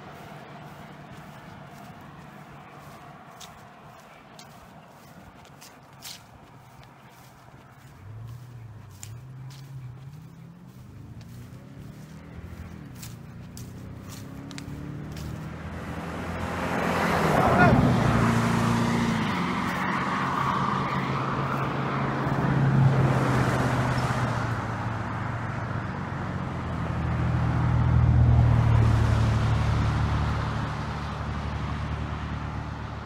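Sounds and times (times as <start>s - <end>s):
traffic engine and tyre hum: 0.0s - 33.0s.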